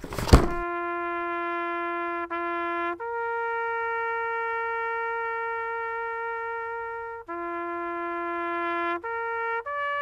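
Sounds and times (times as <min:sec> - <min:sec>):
trumpet holding long note: 0:00.6 - 0:10.0.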